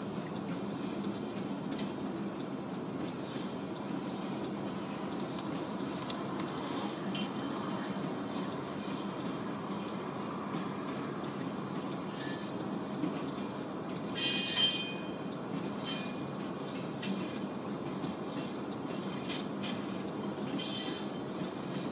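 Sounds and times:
high wheel squeal: 0:12.1 - 0:12.6, 0:20.6 - 0:21.2.

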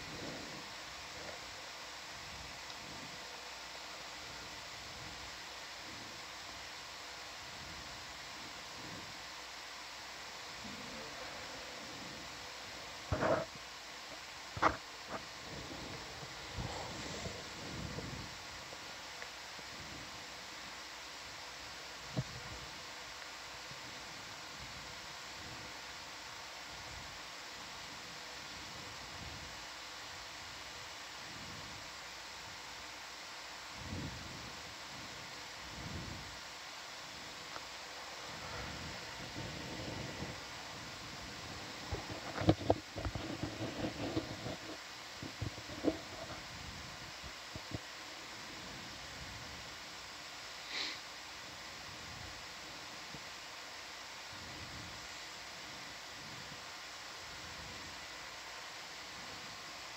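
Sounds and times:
background hiss: 0:00.0 - 0:59.9
faint steady hum: 0:00.0 - 0:59.9.

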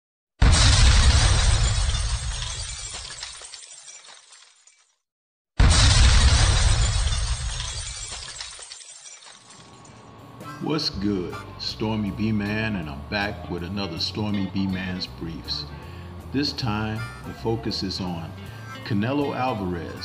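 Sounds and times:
loud crash with deep rumble: 0:00.4 - 0:02.6, 0:05.6 - 0:07.9.

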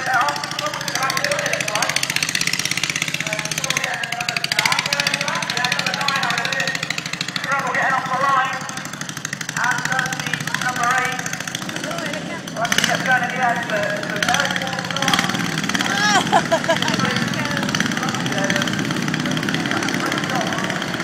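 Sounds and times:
people talking: 0:00.0 - 0:02.0, 0:03.1 - 0:08.8, 0:09.6 - 0:21.0
lawn mower engines buzzing: 0:00.0 - 0:21.0.

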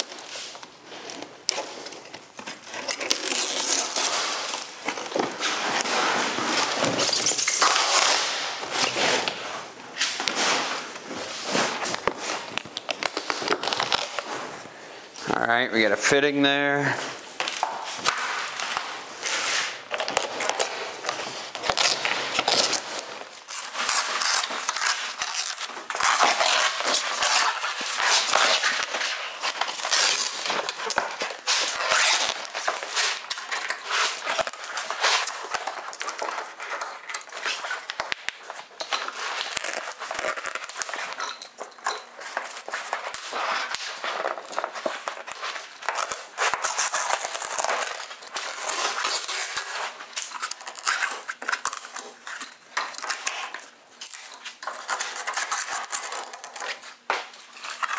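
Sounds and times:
stiff fabric tearing and crackling: 0:02.6 - 0:09.4, 0:11.3 - 0:14.5, 0:21.3 - 0:38.2, 0:38.8 - 0:52.4.

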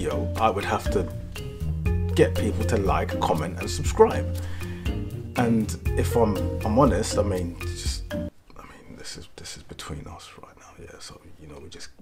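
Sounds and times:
background music: 0:00.0 - 0:08.4
man whispering: 0:08.5 - 0:12.0.

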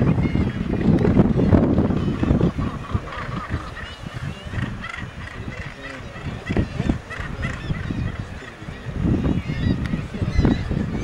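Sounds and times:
seabirds calling: 0:00.0 - 0:11.0.

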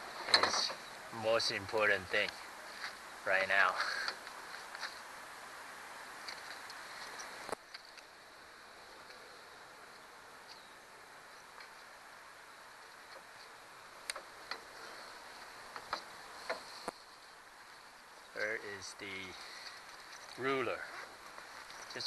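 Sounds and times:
faint steady hiss: 0:00.0 - 0:22.0
soft rustling of fishing gear: 0:00.0 - 0:22.0.

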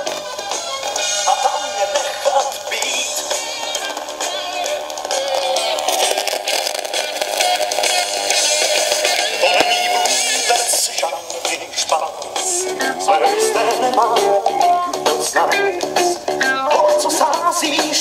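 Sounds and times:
song with singer from speaker: 0:00.0 - 0:18.0
vinyl crackle: 0:00.0 - 0:18.0.

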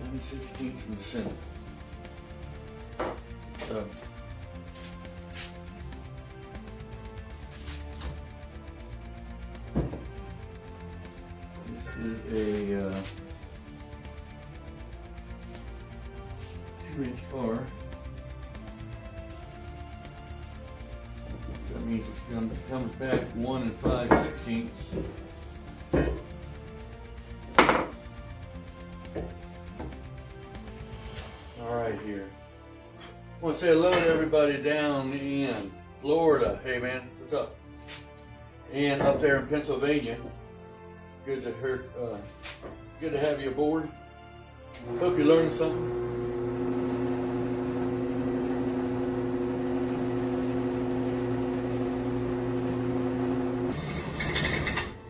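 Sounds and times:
background music: 0:00.0 - 0:55.0
tools knocking on workbench: 0:03.0 - 0:03.3, 0:09.7 - 0:10.1, 0:23.1 - 0:25.2, 0:25.9 - 0:26.3, 0:27.5 - 0:28.0.

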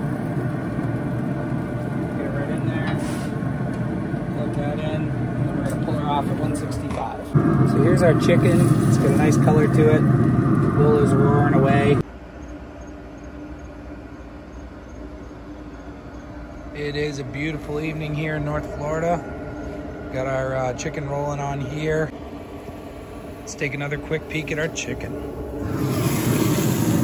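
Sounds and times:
grill fan humming: 0:00.0 - 0:27.0
high insect chirps: 0:12.0 - 0:20.4.

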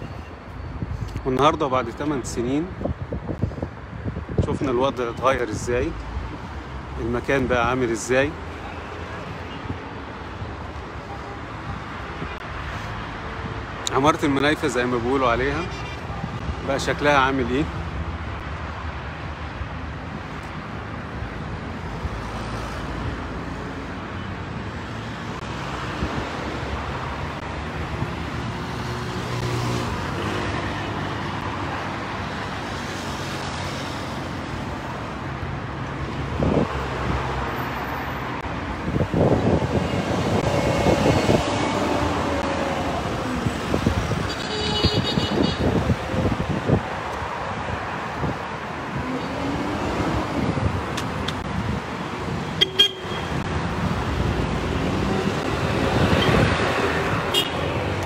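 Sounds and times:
cars passing: 0:00.0 - 0:58.0
car horns tooting: 0:44.3 - 0:45.8, 0:52.5 - 0:53.4, 0:57.2 - 0:57.7.

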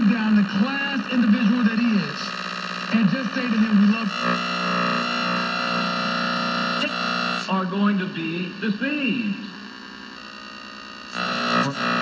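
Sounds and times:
radio static with faint hum: 0:00.0 - 0:12.0.

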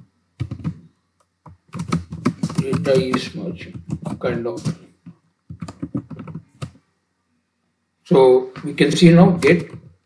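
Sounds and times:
computer keyboard typing: 0:00.4 - 0:00.8, 0:01.4 - 0:06.8, 0:09.4 - 0:09.9.

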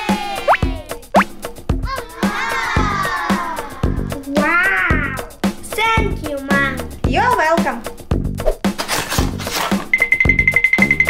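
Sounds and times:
background music with steady beat: 0:00.0 - 0:11.0.

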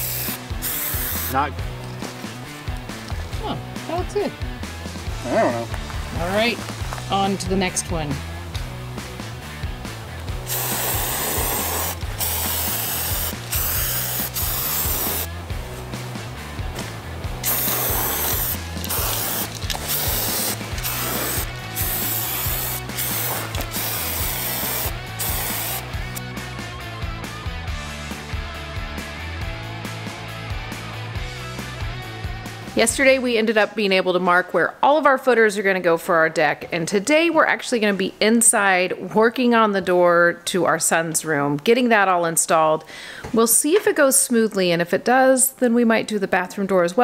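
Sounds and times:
spray-paint can hissing: 0:00.0 - 0:01.3, 0:10.4 - 0:15.3, 0:17.4 - 0:26.2
background music with bass line: 0:00.0 - 0:33.4.

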